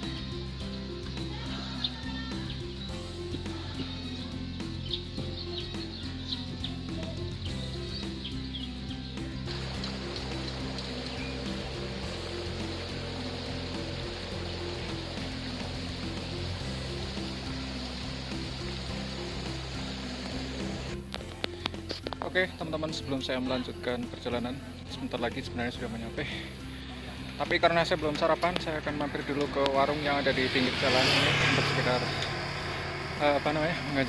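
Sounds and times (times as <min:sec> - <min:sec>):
birds chirping: 0:00.0 - 0:34.0
music with blocky bass line: 0:00.0 - 0:34.0
steady rushing hiss: 0:09.3 - 0:22.0, 0:26.0 - 0:34.0.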